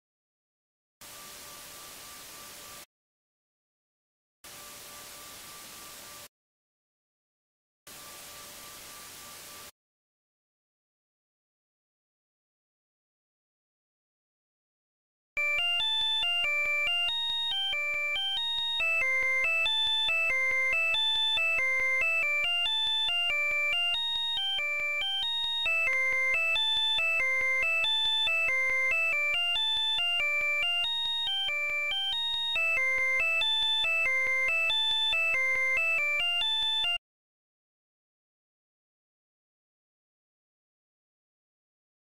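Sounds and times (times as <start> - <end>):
bell-like synth melody: 15.4 - 37.0.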